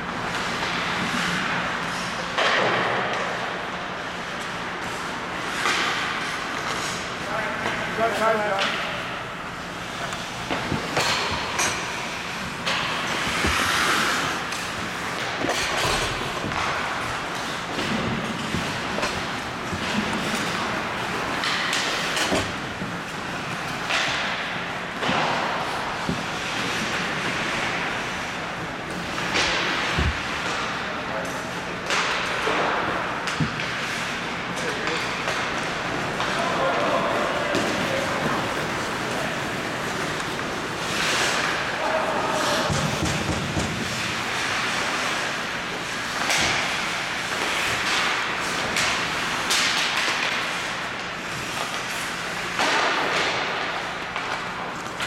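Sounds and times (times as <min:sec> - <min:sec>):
sticks hitting puck: 0:00.2 - 0:55.0
players' voices: 0:06.3 - 0:15.4, 0:33.8 - 0:50.4
skate blades scraping ice: 0:09.8 - 0:24.3, 0:33.7 - 0:53.6.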